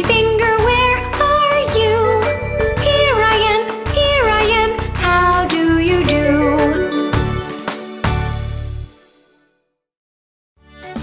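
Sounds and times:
bouncy backing track: 0.0 - 8.1.

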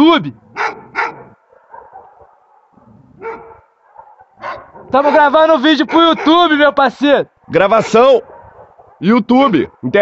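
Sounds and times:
dog barking: 0.4 - 6.6, 7.4 - 9.1.

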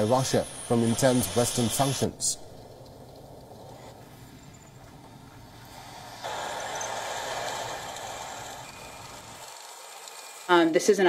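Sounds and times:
tracked military vehicles driving: 0.0 - 10.5.

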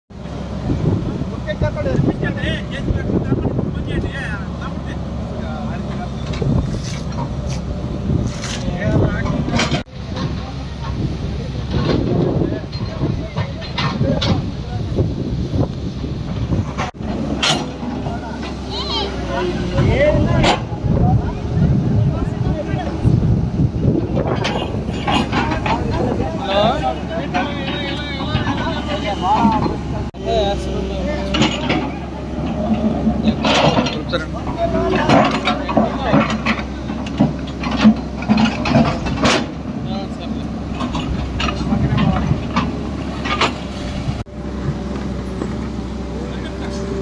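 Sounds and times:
excavator diesel engine running: 0.1 - 47.0
people talking: 0.8 - 7.0, 8.4 - 15.1, 17.0 - 23.3, 23.9 - 42.6, 46.0 - 47.0.

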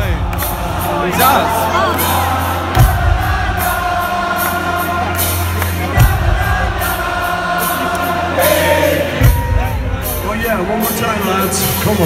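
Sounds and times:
audience singing along: 0.0 - 11.6.

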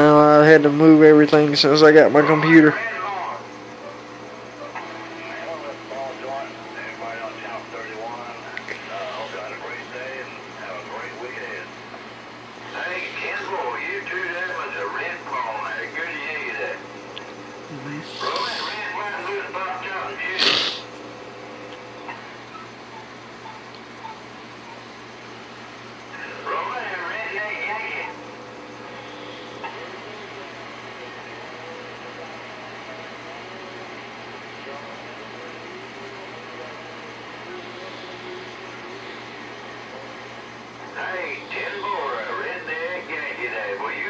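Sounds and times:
voices over radio: 0.0 - 20.8, 21.9 - 44.0
radio static hiss: 0.0 - 44.0.

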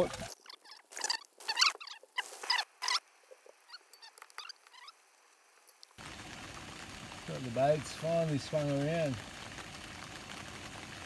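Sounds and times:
faint squeaks: 0.0 - 5.0
steady hiss: 0.0 - 11.0.

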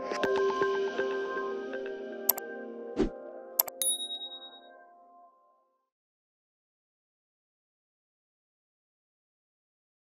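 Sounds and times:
bright electronic ding: 3.6 - 4.7.

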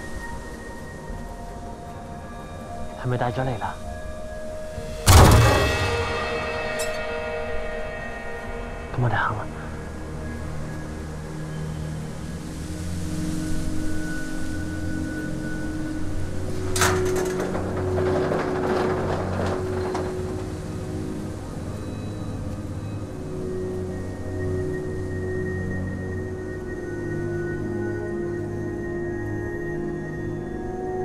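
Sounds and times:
low sustained drone: 0.0 - 31.0
sudden sharp hit: 4.8 - 10.0
noisy clatter: 5.0 - 7.8, 16.3 - 22.3.

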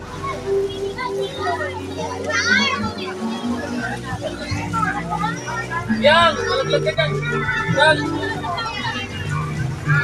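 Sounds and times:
young children's voices: 0.0 - 10.0.

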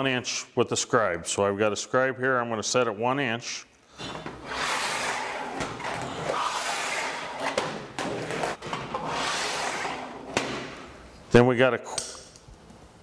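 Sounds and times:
scribe scraping sheet metal: 4.0 - 10.8.

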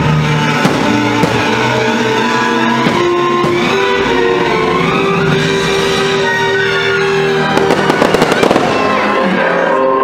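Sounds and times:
loud music playing: 0.0 - 10.0
firework crackles and pops: 7.5 - 9.1.

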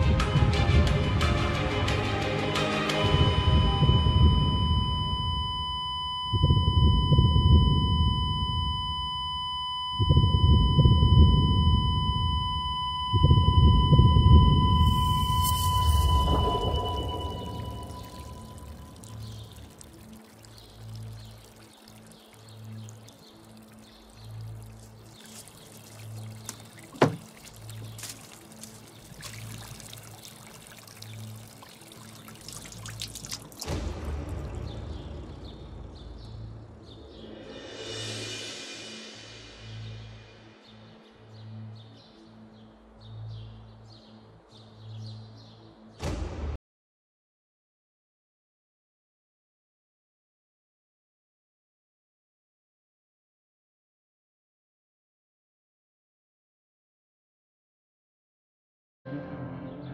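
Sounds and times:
dramatic music: 0.0 - 5.5, 13.2 - 21.6, 33.6 - 41.8, 59.1 - 59.9
monitor flatline tone: 3.0 - 18.8.

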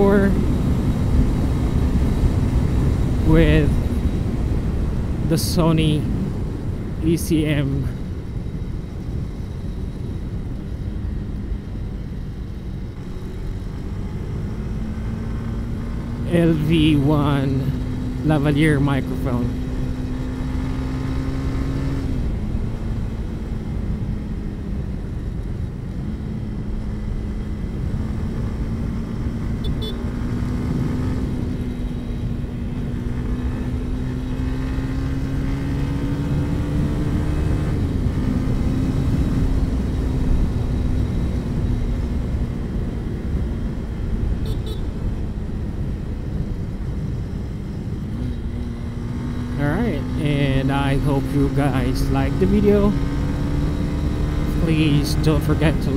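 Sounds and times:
motorcycle engine cruising: 0.0 - 55.9
dense low noise: 49.5 - 53.1, 53.9 - 55.9.

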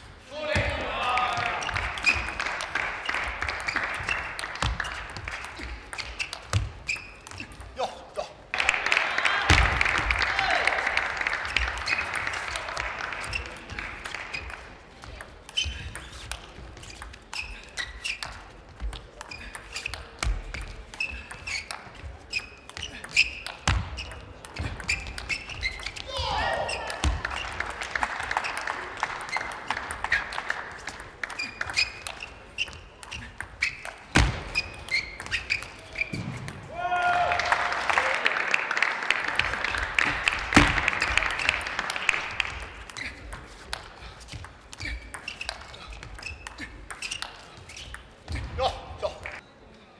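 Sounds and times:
crowd applause: 1.0 - 5.8, 8.5 - 14.7, 26.8 - 31.8, 37.0 - 43.0
crowd shouts: 26.0 - 27.1, 36.7 - 38.3.

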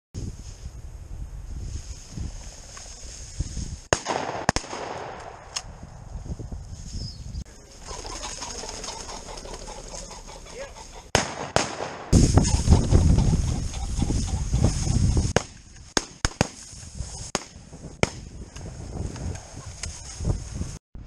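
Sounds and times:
dry grass and brush rustling: 0.2 - 3.9, 5.6 - 11.1, 12.1 - 20.8
sharp cracks: 3.9 - 5.8, 11.1 - 12.3, 15.3 - 18.3
wind buffeting microphone: 5.4 - 7.5, 12.1 - 15.4, 16.7 - 21.0.

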